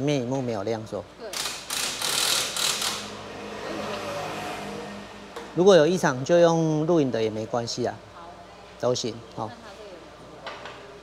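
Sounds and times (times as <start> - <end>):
ratchet wrench clicking: 1.3 - 3.1.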